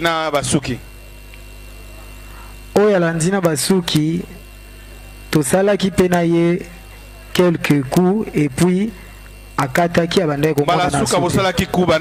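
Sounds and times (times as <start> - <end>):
man talking: 0.0 - 0.9, 2.7 - 4.4, 5.3 - 9.0, 9.6 - 12.0
electrical mains hum: 0.0 - 12.0.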